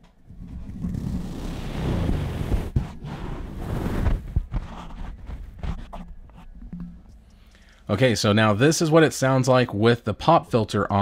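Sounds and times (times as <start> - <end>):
microphone handling rustle: 0.3 - 6.5.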